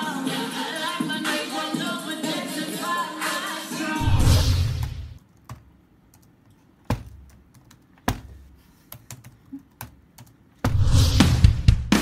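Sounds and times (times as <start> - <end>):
typing on computer keyboard: 5.2 - 8.0, 8.8 - 10.5.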